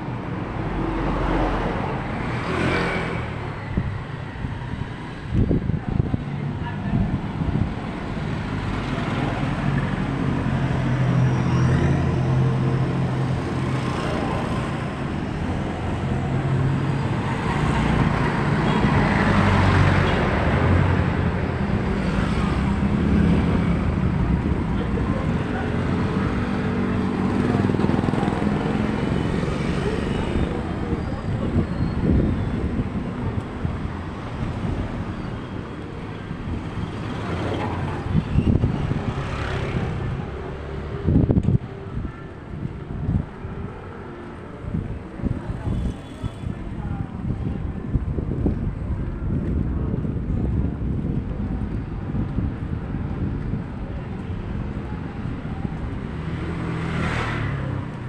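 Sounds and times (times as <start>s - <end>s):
road noise: 0.0s - 58.0s.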